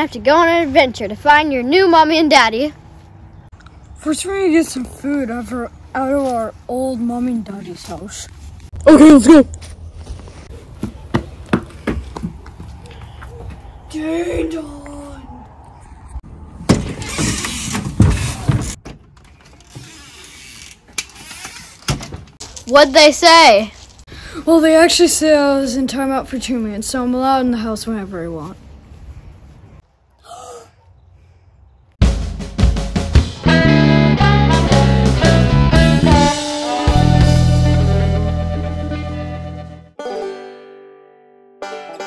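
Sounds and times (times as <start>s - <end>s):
footsteps on concrete steps: 9.5s - 13.8s
person gasping: 30.2s - 31.6s.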